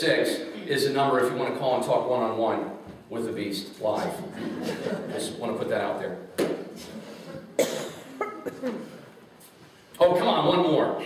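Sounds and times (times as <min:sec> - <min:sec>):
person coughing: 0:07.5 - 0:09.0.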